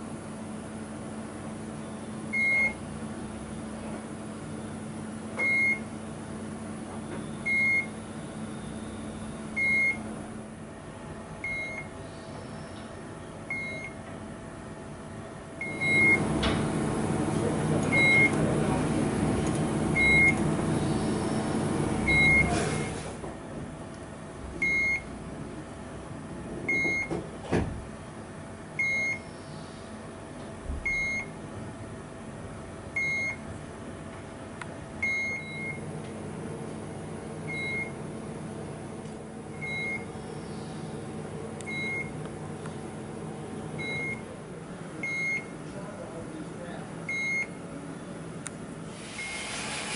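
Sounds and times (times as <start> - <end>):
steady machine hum: 0.0 - 49.9.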